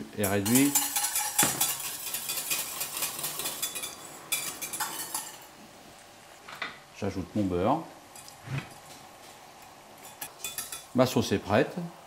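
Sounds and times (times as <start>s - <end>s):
metal utensils and pans clinking: 0.2s - 5.5s, 10.0s - 10.9s.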